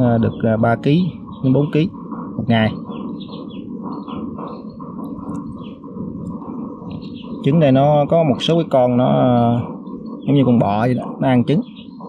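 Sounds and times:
small birds chirping: 0.0 - 12.0
steady low background noise: 0.0 - 12.0.

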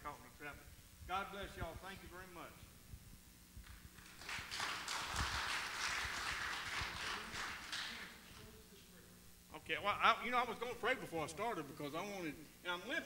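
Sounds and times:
small crowd clapping: 3.6 - 8.5.

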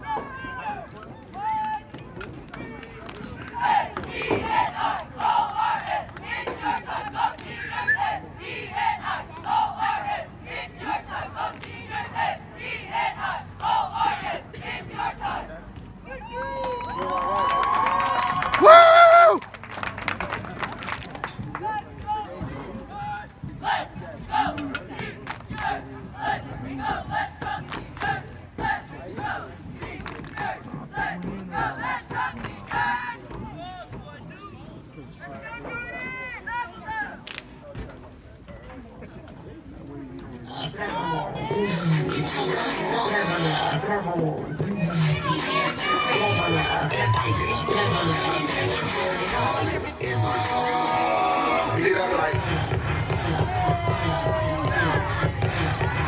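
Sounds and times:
cheerleaders shouting a cheer: 3.5 - 15.5, 44.7 - 56.0
cheerleaders shouting in unison: 45.1 - 48.7.

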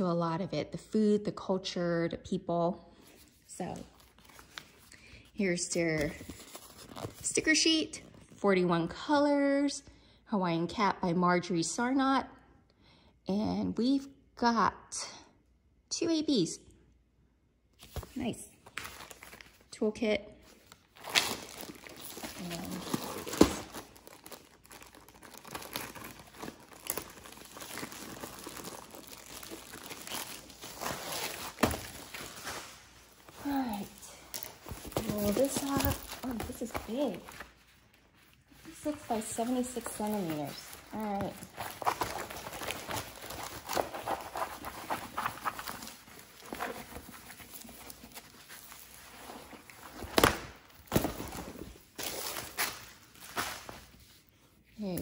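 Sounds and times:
plastic wrapping crinkling: 20.5 - 54.3.

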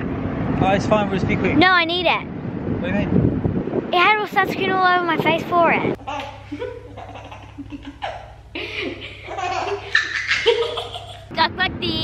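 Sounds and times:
baby laughing: 6.0 - 11.3
girl laughing: 6.0 - 11.3.

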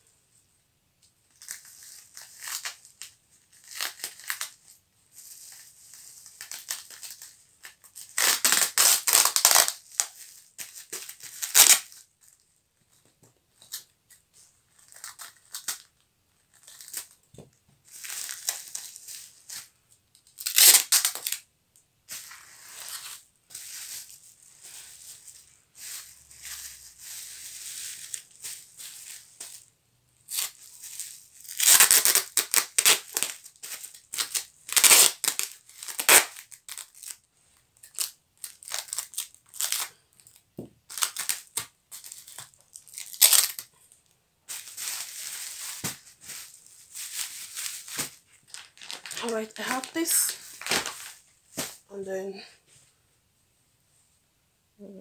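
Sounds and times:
bubble wrap crinkling: 1.3 - 21.5, 22.1 - 52.0
packing tape torn off roll: 6.4 - 12.0, 20.2 - 21.4, 31.4 - 37.2, 37.8 - 43.7, 47.3 - 51.8.

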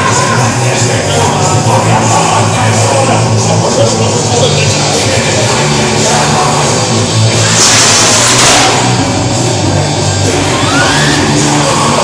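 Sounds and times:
loud rock music: 0.0 - 12.0.

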